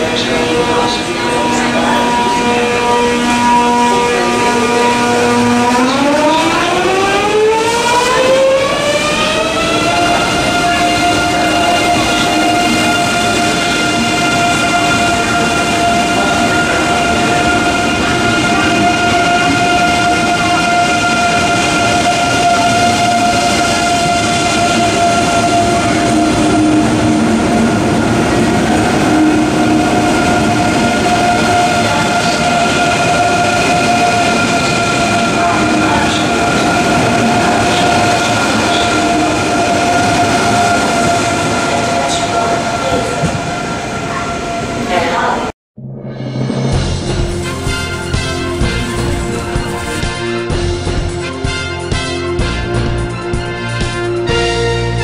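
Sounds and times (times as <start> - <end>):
train cars rolling: 0.0 - 45.5, 46.5 - 52.9.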